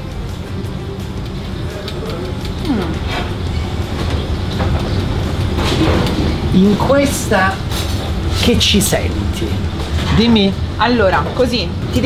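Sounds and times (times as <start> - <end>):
low machinery rumble: 0.0 - 12.0.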